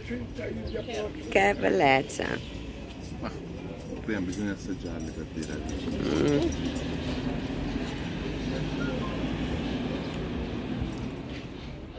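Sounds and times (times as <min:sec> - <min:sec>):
faint voices: 0:00.0 - 0:11.9.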